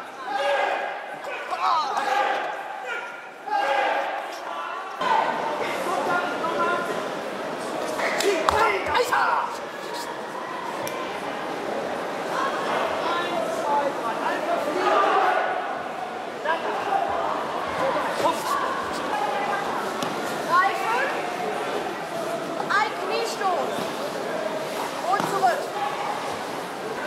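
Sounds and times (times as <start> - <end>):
crowd chatter in a large hall: 0.0 - 27.0.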